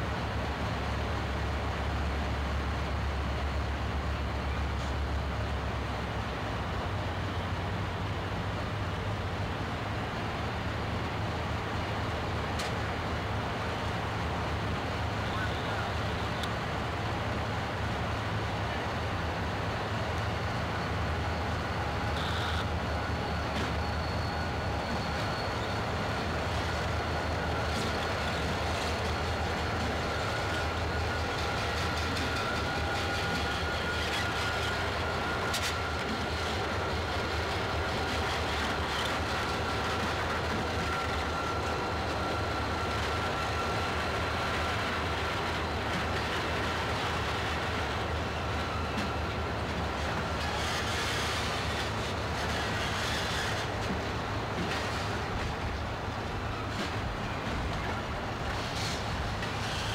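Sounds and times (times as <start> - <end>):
diesel locomotive running: 0.0 - 59.9
faint steady whine: 7.2 - 59.9.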